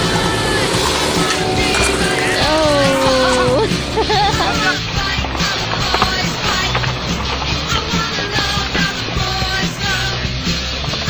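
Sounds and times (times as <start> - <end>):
rock music: 0.0 - 11.0
skateboard wheels rolling on concrete: 0.0 - 11.0.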